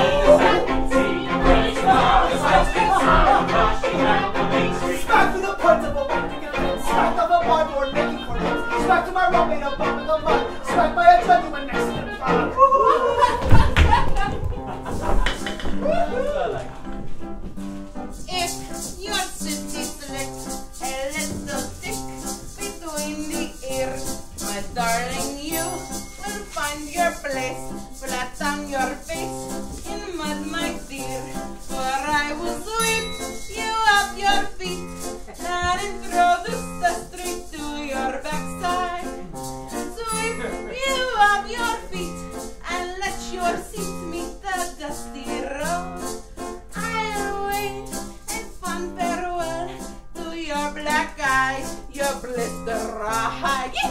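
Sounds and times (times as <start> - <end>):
band playing theatre music: 0.0 - 12.7, 13.4 - 53.9
tambourine jingling: 17.9 - 53.9.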